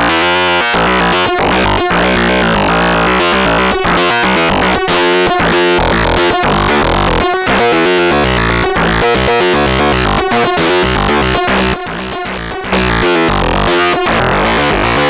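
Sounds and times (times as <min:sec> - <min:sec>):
modular synthesizer stepped notes: 0:00.0 - 0:15.0.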